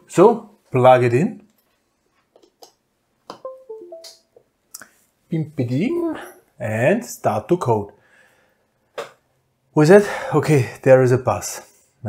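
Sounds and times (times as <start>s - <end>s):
computer chime: 3.4s - 4.4s.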